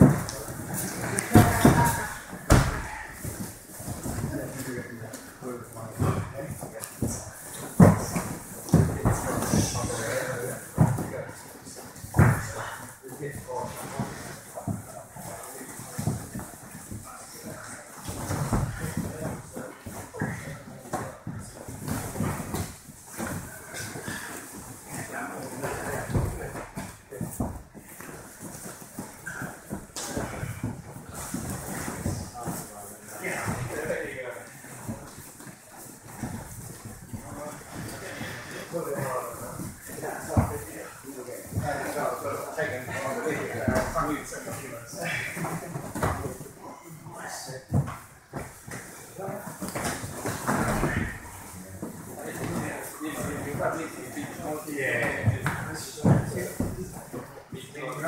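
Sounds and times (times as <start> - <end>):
bodies thumping on mats: 0.0 - 4.6, 6.0 - 11.1, 12.0 - 12.8, 18.0 - 20.4, 47.6 - 53.6
hard breathing: 23.4 - 24.8, 37.6 - 38.8.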